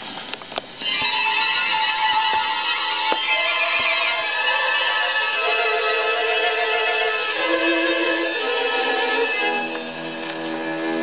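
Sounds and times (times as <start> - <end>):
record needle clicks and crackle: 0.0 - 4.2
light orchestral music: 0.8 - 11.0.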